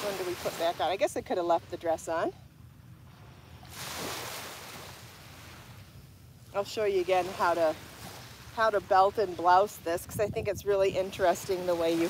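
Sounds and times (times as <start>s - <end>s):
waves washing up a beach: 0.0s - 2.3s, 3.2s - 12.0s
low steady rumble: 0.0s - 3.8s.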